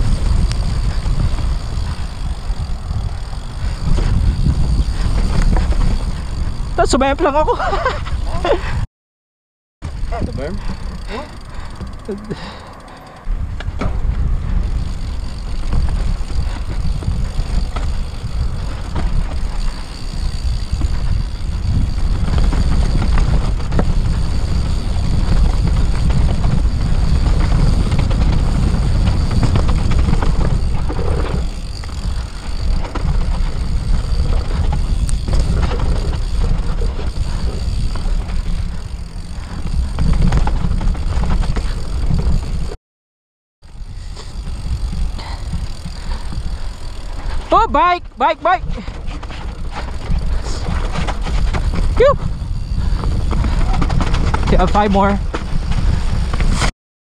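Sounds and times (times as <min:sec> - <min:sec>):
bike tyres rolling on dirt: 0:00.0 - 0:08.5, 0:09.8 - 0:42.8, 0:43.6 - 0:56.7
bike rattling and knocking: 0:00.0 - 0:08.8, 0:09.8 - 0:42.8, 0:43.6 - 0:56.7
wind rumble on microphone: 0:00.0 - 0:08.9, 0:09.8 - 0:42.8, 0:43.6 - 0:56.7.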